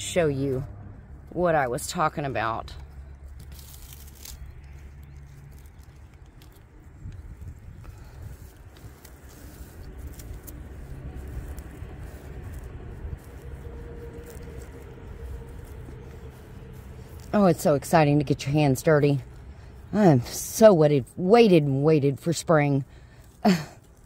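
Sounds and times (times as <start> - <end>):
hands scraping in soil: 0.0 - 24.0
steady low rumble: 0.0 - 24.0
small scattered crackles: 2.7 - 17.4.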